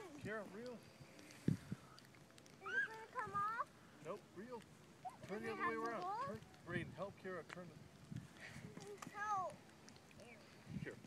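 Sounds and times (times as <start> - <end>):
child's high-pitched cry: 2.6 - 3.6.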